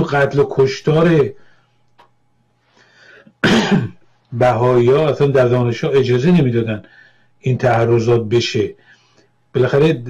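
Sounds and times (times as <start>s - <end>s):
faint breath: 1.4s - 1.8s, 2.6s - 3.4s, 6.8s - 7.4s, 8.8s - 9.4s
man clearing throat: 3.4s - 4.0s.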